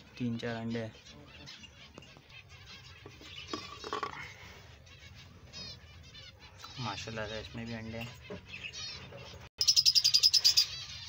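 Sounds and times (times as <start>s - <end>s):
finches chirping: 0.2s - 11.0s.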